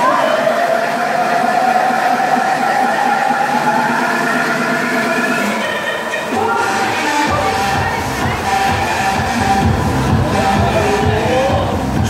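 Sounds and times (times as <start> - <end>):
thrill ride drive whine: 0.0 - 12.0.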